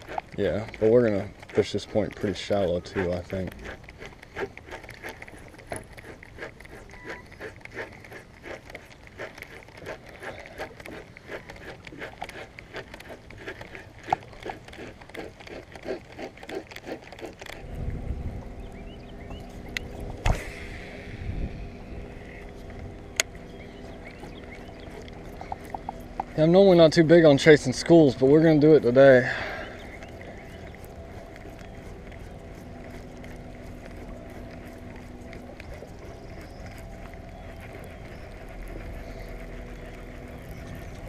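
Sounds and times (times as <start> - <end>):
trolling motor humming: 0.0 - 41.0
water lapping against boat hull: 0.0 - 41.0.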